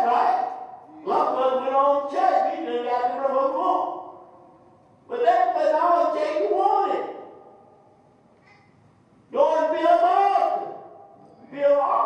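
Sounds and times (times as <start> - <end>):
man preaching: 0.0 - 4.4, 5.1 - 7.7, 9.3 - 12.0.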